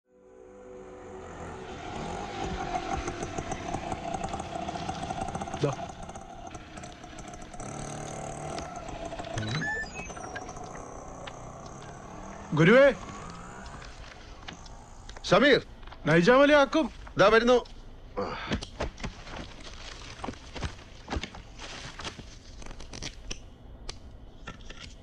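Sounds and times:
auto-rickshaw engine running: 0.4s - 16.2s.

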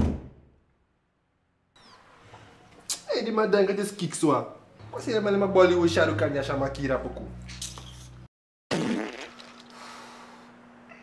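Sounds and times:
fart: 8.7s - 9.8s.

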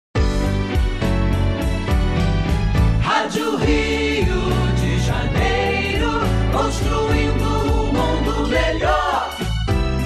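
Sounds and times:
gospel choir with instruments: 2.7s - 10.0s.

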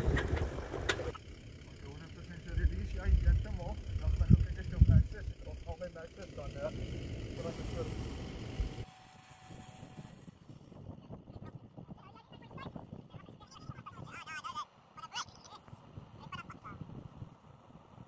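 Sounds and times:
low rumble: 2.3s - 8.8s.

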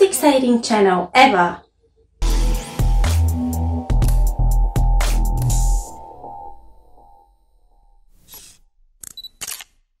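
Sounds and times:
camera shutter click: 8.3s - 9.8s.

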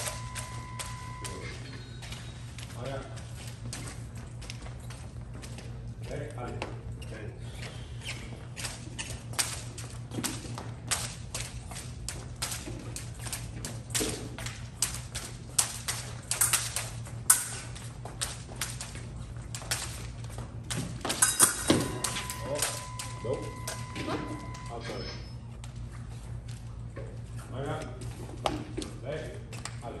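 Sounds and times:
scoring machine beep: 0.0s - 2.4s, 21.6s - 25.5s
footsteps tapping on piste: 0.0s - 24.7s, 25.5s - 30.0s.

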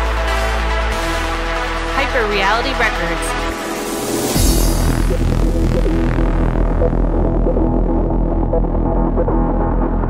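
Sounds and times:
deep bass drone: 0.0s - 10.0s
hard trance music: 0.0s - 10.0s
repeating synth notes: 2.4s - 9.6s.

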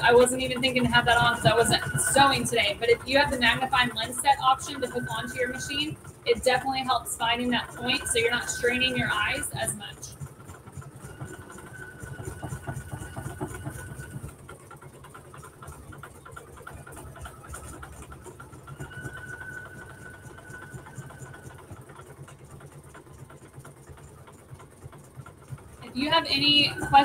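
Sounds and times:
embroidery machine needle rattle: 0.0s - 27.0s
high machine whine: 0.0s - 27.0s.

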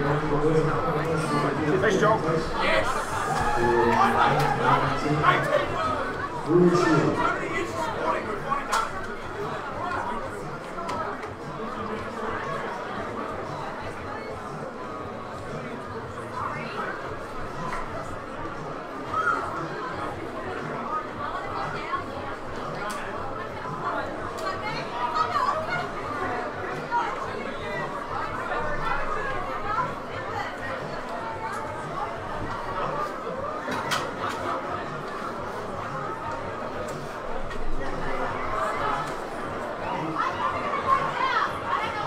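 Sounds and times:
chatter of many voices: 0.0s - 42.0s
people talking at once: 0.0s - 42.0s.

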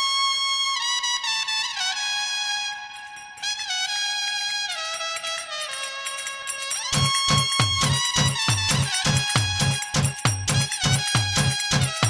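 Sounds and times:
trumpet-like synth lead: 0.0s - 12.0s.

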